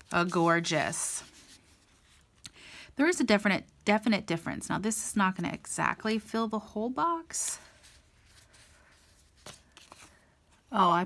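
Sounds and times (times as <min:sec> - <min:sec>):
sticker sheet rustling on paper: 0:07.6 - 0:10.3.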